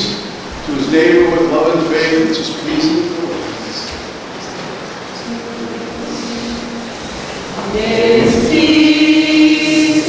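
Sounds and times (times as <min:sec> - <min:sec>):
murmur of congregation: 0:00.0 - 0:10.0
held sung note: 0:05.3 - 0:10.0.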